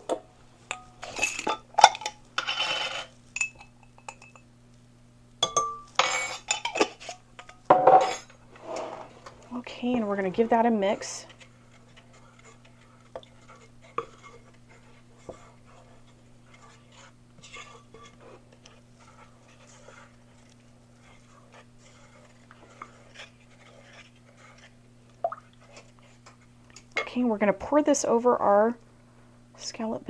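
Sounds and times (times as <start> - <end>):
steady low hum: 0.0 - 30.0
spatula scraping ceramic bowl: 2.4 - 3.2, 6.0 - 7.2, 8.0 - 24.8.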